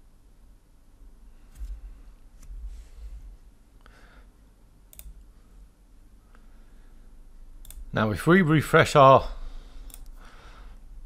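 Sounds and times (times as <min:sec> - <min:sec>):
low room tone hum: 0:00.0 - 0:11.0
computer mouse clicks: 0:04.9 - 0:05.3, 0:07.6 - 0:07.9, 0:09.8 - 0:10.2.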